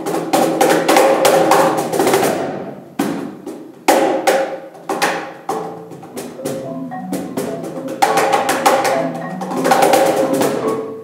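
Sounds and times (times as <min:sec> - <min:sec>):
hand slaps on cajon: 0:03.0 - 0:05.7
marimba notes: 0:05.5 - 0:11.0.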